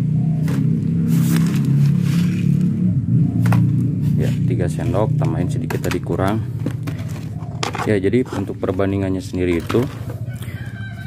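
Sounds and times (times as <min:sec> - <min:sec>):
low engine rumble: 0:00.0 - 0:11.0.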